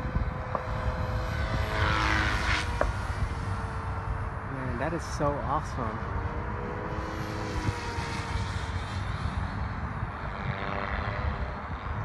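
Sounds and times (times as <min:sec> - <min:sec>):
distant model helicopter rotor whine: 0:00.0 - 0:12.0
wind buffeting microphone: 0:00.0 - 0:12.0.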